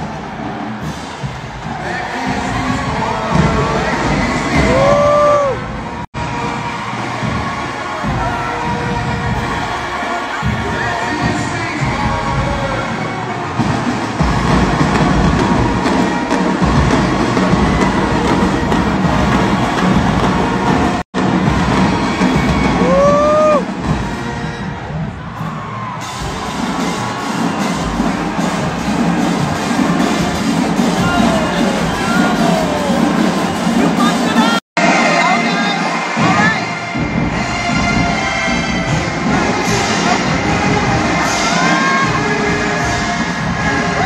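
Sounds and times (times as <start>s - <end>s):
crowd cheering: 0.0s - 44.0s
marching band brass and drums: 0.0s - 44.0s.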